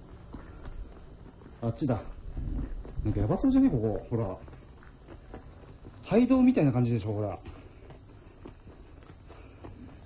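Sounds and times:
crickets chirping: 0:00.0 - 0:10.0
faint footsteps on path: 0:00.0 - 0:10.0.

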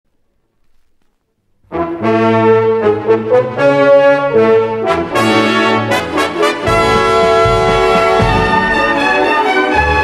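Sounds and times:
orchestra brass playing loudly: 0:01.7 - 0:10.0.

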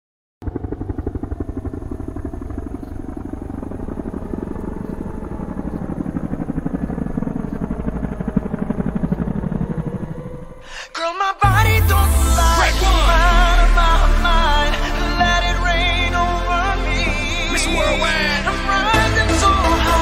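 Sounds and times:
rapid low chopping pulse: 0:00.4 - 0:10.6, 0:11.4 - 0:17.4.

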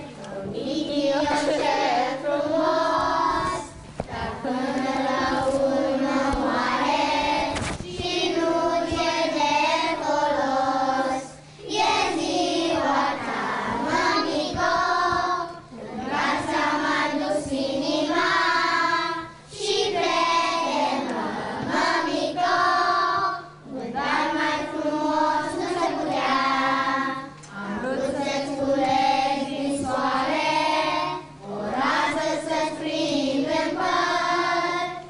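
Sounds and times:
young children singing: 0:00.0 - 0:35.0.

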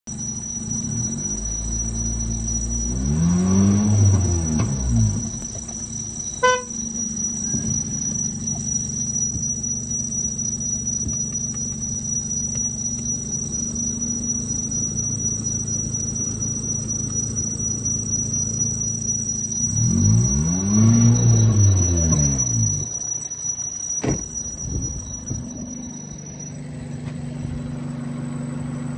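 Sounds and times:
car engine idling: 0:00.0 - 0:28.9
engine throttle blip: 0:00.1 - 0:28.9
short beep: 0:00.1 - 0:28.9
steady high whine: 0:00.1 - 0:28.9.

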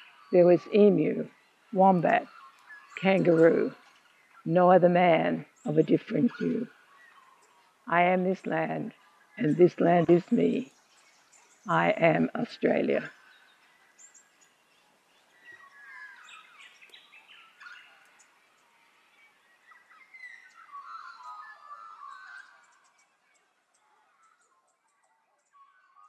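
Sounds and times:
birds chirping and warbling: 0:00.0 - 0:26.0.

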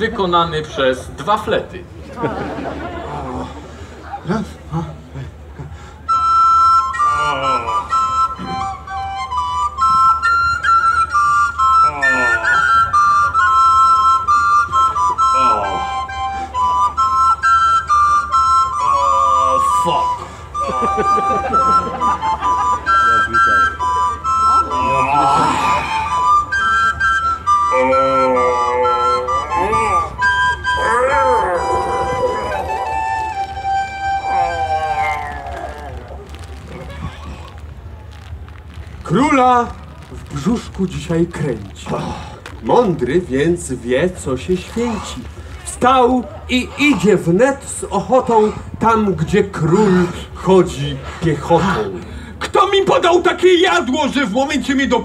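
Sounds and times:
flute duet: 0:06.0 - 0:39.0
voices: 0:18.2 - 0:55.0.

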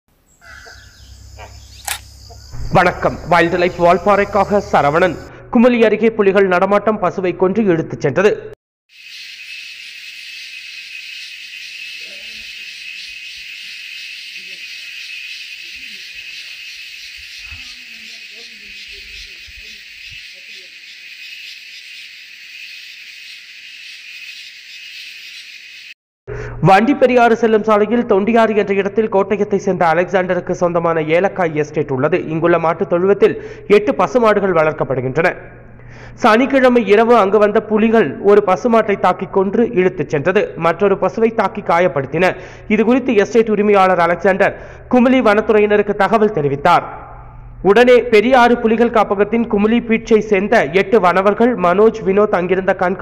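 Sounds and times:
insect chorus: 0:00.2 - 0:05.3, 0:08.9 - 0:26.0
microphone hiss: 0:01.8 - 0:05.3
steady high tone: 0:11.8 - 0:20.8.

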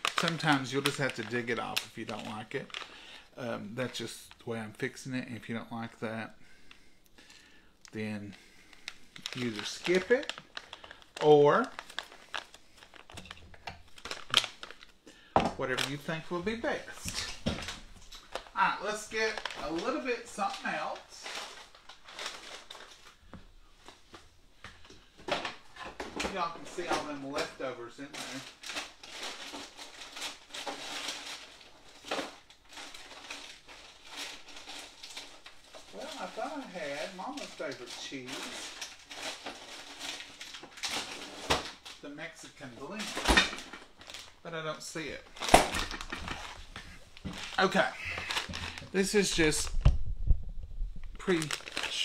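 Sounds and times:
crinkling: 0:00.0 - 0:04.8, 0:05.4 - 0:52.0.

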